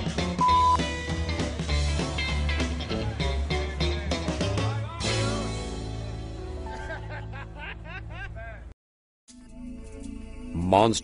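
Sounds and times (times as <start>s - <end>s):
background music: 0.0s - 8.7s, 9.3s - 11.0s
man laughing: 6.6s - 8.7s.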